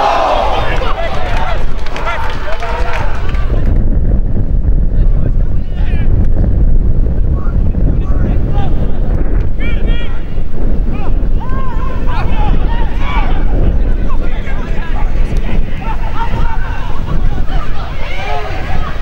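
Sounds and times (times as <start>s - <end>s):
wind buffeting microphone: 0.0s - 19.0s
distant shouts and calls: 9.6s - 19.0s.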